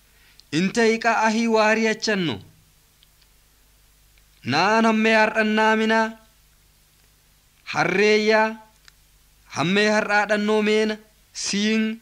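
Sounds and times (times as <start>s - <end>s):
faint clicks: 0.3s - 0.5s, 3.0s - 3.4s, 4.1s - 4.5s, 8.8s - 9.0s
person speaking: 0.5s - 2.6s.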